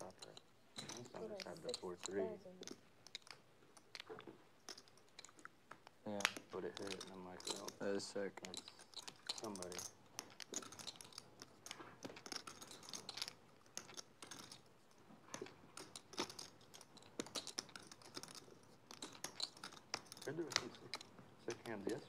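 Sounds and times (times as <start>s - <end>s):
person speaking: 0.0s - 2.8s, 6.1s - 8.8s, 9.4s - 9.9s, 20.2s - 22.0s
poker chips clicking: 0.0s - 22.0s.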